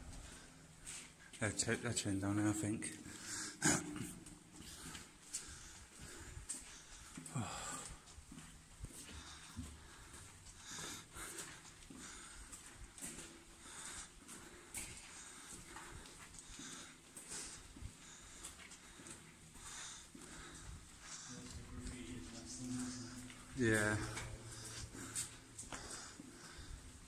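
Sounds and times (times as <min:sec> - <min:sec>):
soft footsteps in a tunnel: 0:00.0 - 0:27.0
heavy breathing: 0:03.0 - 0:27.0.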